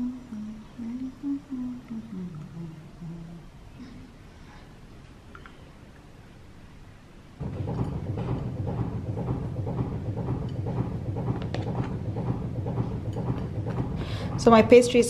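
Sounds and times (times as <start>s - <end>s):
tumble dryer drum rumbling: 7.4s - 15.0s.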